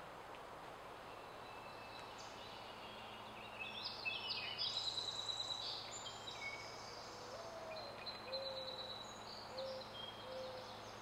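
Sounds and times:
bird cooing: 9.6s - 10.6s.

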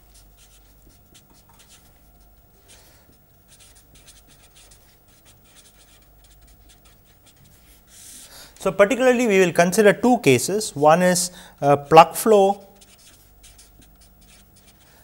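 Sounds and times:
marker writing on paper: 0.1s - 2.3s, 3.0s - 8.3s, 12.6s - 14.9s.

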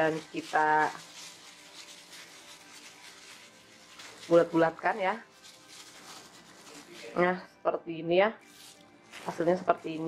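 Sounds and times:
plastic glove rubbing: 0.0s - 7.4s, 8.4s - 10.0s.

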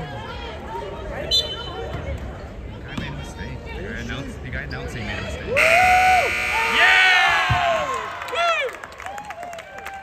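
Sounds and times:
spectators shouting and cheering: 5.5s - 10.0s
scoreboard buzzer: 5.6s - 6.9s.

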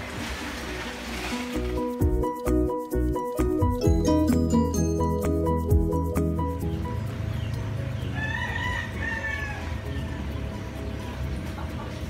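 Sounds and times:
rooster crowing: 8.2s - 10.0s.

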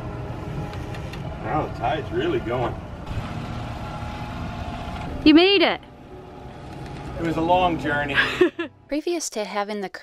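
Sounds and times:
outboard motor low rumble: 0.0s - 8.0s.

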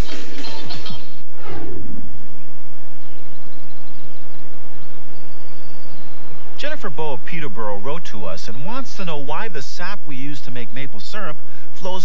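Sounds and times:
low steady hiss: 2.0s - 12.0s.

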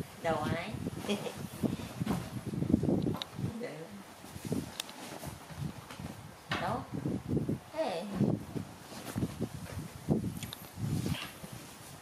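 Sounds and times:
soft low thumps: 0.8s - 3.6s
rustling of bag: 4.2s - 6.3s, 8.5s - 12.0s.

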